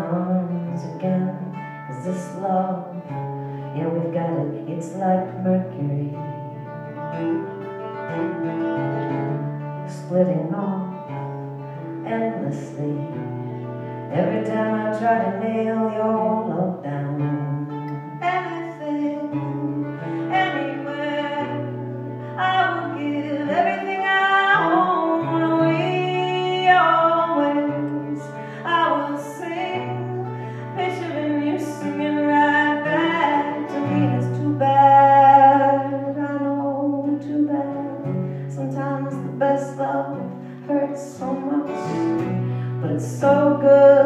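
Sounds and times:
acoustic guitar chords: 0.0 - 44.0
woman singing: 0.0 - 44.0.

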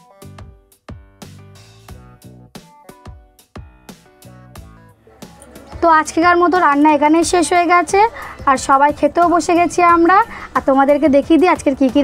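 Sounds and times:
woman speaking: 5.5 - 12.0.

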